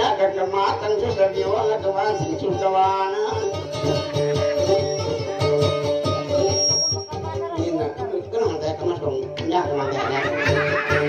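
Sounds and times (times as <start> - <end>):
person singing: 0.0 - 5.7
guitar plucking rhythm: 0.0 - 11.0.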